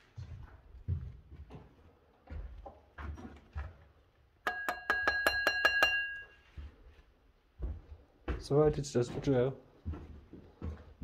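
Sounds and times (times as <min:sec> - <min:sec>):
alarm bell ringing: 0:04.5 - 0:06.5.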